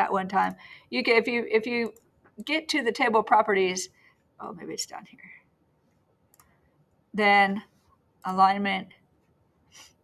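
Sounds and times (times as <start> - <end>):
person speaking: 0.0 - 5.4, 7.1 - 9.0
computer mouse click: 1.8 - 2.6, 6.3 - 7.0.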